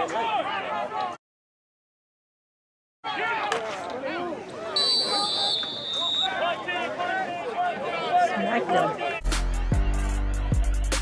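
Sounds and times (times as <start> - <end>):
voices shouting: 3.0 - 9.2
referee's whistle: 4.7 - 6.7.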